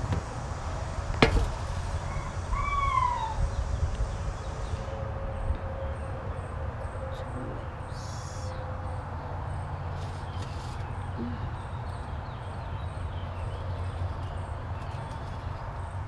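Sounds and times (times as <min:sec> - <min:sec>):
rising and falling call: 0:02.0 - 0:03.6.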